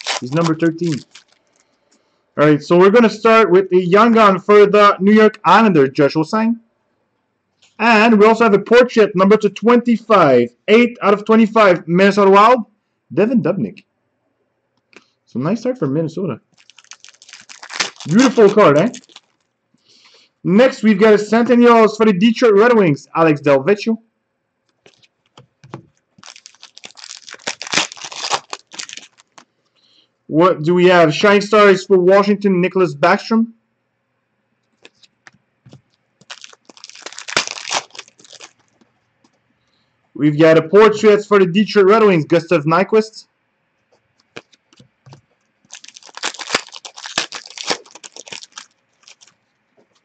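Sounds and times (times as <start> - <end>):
foil wrapper crinkling: 0.0 - 1.7, 16.5 - 19.5, 24.7 - 29.5, 35.7 - 38.8, 44.2 - 50.0.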